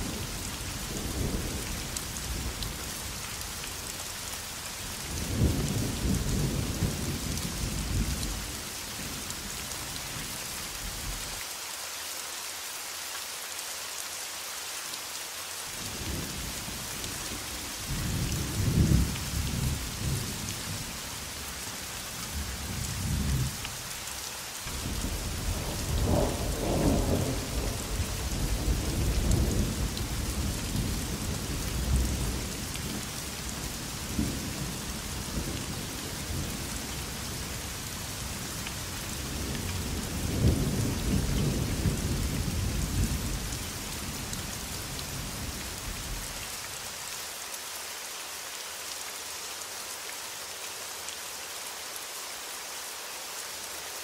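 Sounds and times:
steady rain: 0.0s - 54.0s.

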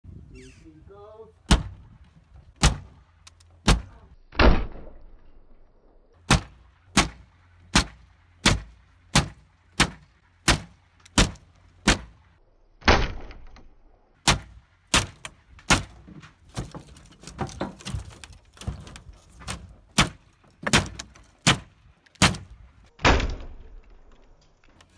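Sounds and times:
heavy blows on wooden wall: 1.4s - 4.1s, 14.2s - 23.2s
wooden boards cracking and splintering: 6.2s - 12.2s, 12.8s - 24.9s.

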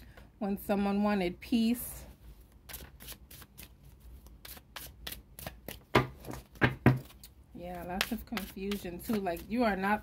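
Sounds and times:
cards being shuffled: 2.5s - 7.4s.

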